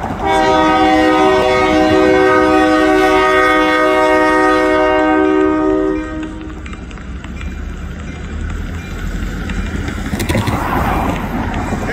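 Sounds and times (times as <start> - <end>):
locomotive air horn blast: 0.2 - 6.5.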